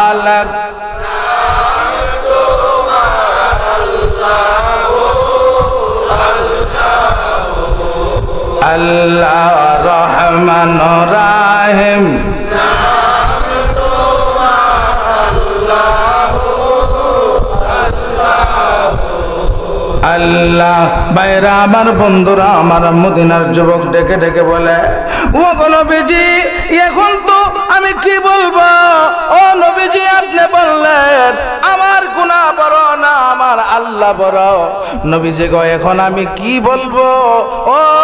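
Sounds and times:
man chanting through a microphone: 0.0 - 38.0.

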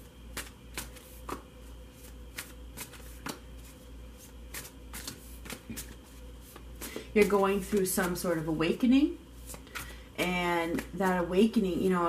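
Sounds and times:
steady low hum: 0.0 - 12.0
cards being shuffled: 0.3 - 8.4.

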